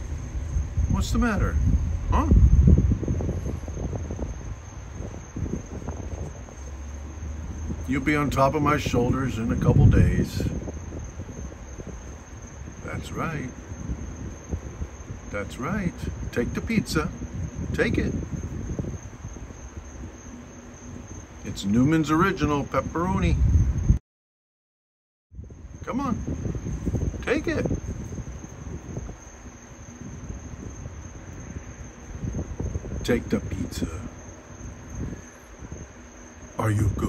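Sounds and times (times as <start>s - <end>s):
low uneven rumble: 0.0s - 22.4s
high insect trill: 0.0s - 24.0s, 25.3s - 37.0s.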